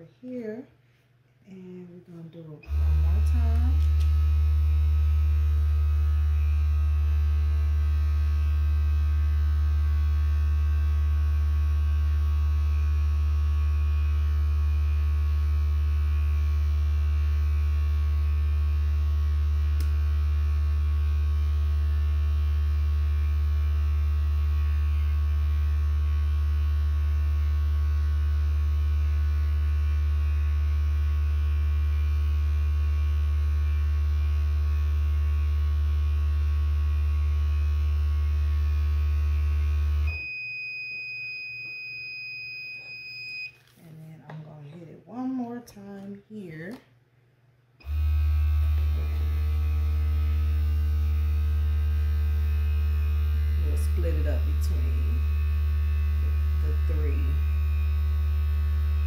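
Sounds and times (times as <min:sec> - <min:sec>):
low electrical hum: 0:00.0 - 0:59.0.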